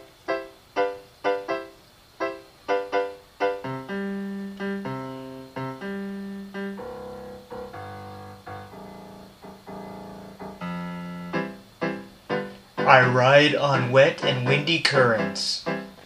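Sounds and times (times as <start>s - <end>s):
piano-like keyboard music: 0.0s - 16.0s.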